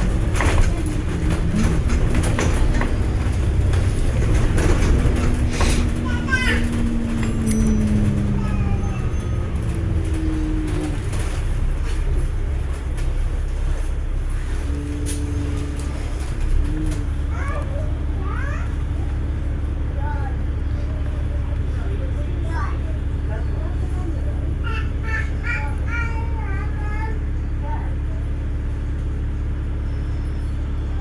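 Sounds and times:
passengers chattering: 0.0 - 28.8
bus diesel engine rumbling: 0.0 - 31.0.

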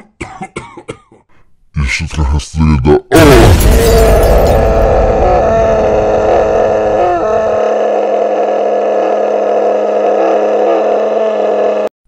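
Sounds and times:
person coughing: 0.0 - 1.3.

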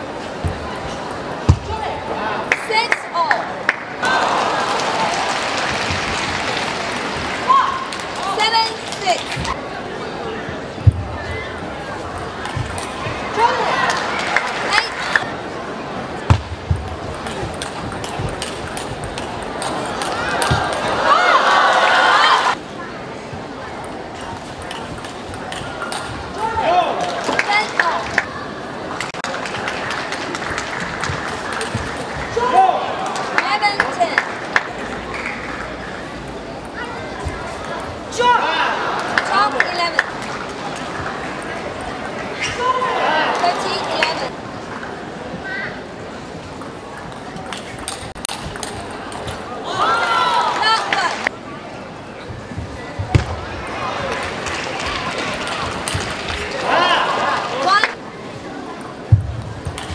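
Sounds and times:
arena background noise: 0.0 - 59.9.

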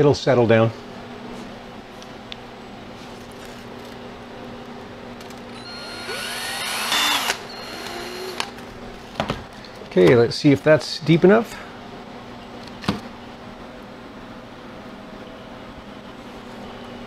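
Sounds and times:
drill boring into frozen food: 5.5 - 8.6.

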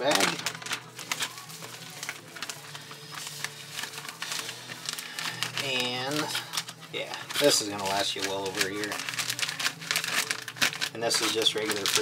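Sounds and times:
plastic crinkling and rustling: 0.0 - 12.0.

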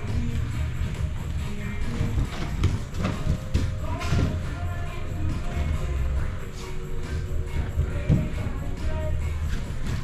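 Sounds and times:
bodies thudding on foam mats: 0.0 - 4.8, 7.1 - 10.0
background music: 0.0 - 10.0.

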